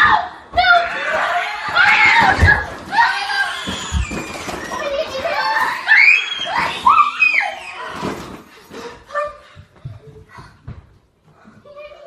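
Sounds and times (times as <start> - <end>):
girls squealing and shrieking: 0.0 - 8.5.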